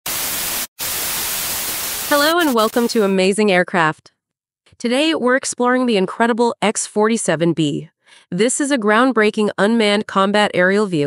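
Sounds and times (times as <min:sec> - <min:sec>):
white noise static hiss: 0:00.1 - 0:03.2.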